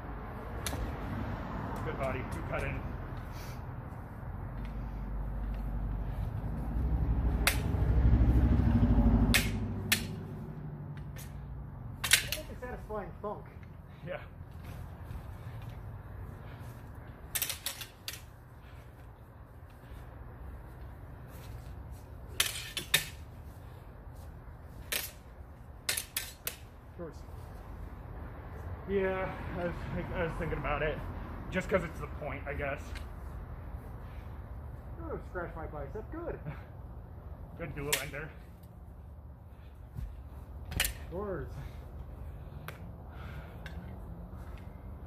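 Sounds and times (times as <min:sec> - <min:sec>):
sword blades clacking: 0:07.4 - 0:07.8, 0:09.2 - 0:10.3, 0:12.0 - 0:12.8, 0:17.2 - 0:18.3, 0:22.3 - 0:23.3, 0:24.8 - 0:26.7, 0:40.7 - 0:41.1
sword blades clashing: 0:09.3 - 0:10.2, 0:12.0 - 0:12.7.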